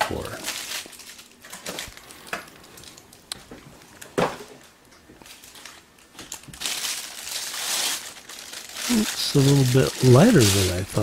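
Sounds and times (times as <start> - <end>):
plastic bag crinkling: 0.0 - 3.2, 4.6 - 11.0.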